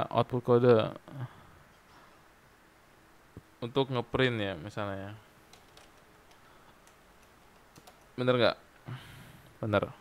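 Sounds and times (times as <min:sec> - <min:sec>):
typing on computer keyboard: 0:05.5 - 0:08.1.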